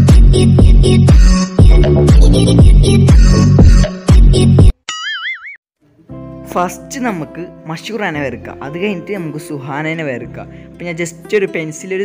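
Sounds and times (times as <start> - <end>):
electronic dance music: 0.0 - 4.8
boing sound effect: 4.9 - 5.6.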